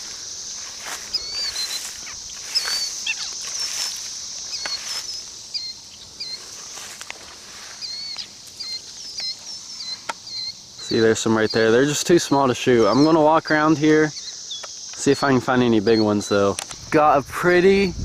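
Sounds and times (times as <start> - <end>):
footsteps through tall grass: 0.0 - 10.2
high-pitched insect drone: 0.0 - 18.0
bird chirping: 0.7 - 17.2.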